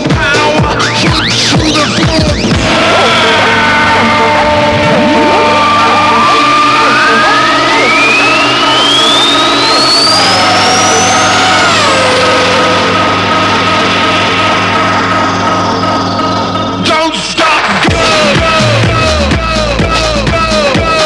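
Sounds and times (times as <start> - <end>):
techno track with steady beat: 0.0 - 21.0
synth tone bending downward: 1.0 - 16.8
rising synth sweep: 1.8 - 16.8.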